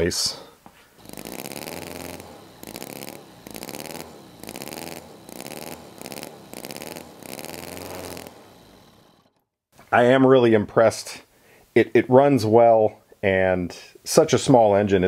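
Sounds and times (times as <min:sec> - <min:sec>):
model engine revving: 0:01.0 - 0:09.4.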